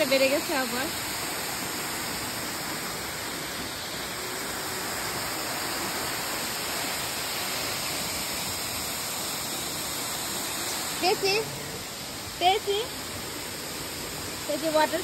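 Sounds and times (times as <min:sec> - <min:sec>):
waterfall rushing: 0:00.0 - 0:15.0.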